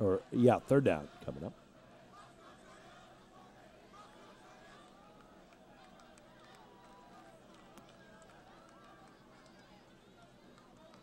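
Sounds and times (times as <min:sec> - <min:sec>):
distant crowd voices: 0:00.0 - 0:11.0.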